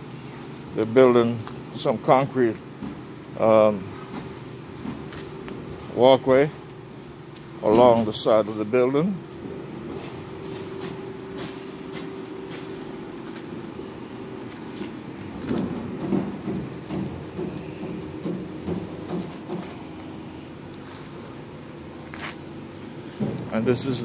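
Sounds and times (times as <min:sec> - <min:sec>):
low machine hum: 0:00.0 - 0:24.0.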